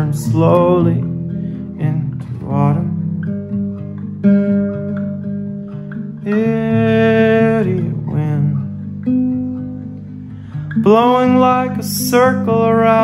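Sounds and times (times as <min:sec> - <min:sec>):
man singing: 0:00.0 - 0:03.2, 0:06.2 - 0:08.9, 0:10.7 - 0:13.0
acoustic guitar strummed and picked: 0:00.0 - 0:13.0.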